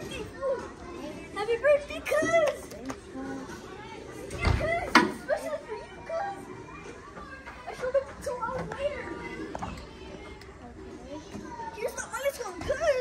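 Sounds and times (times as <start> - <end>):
children chattering: 0.0 - 13.0.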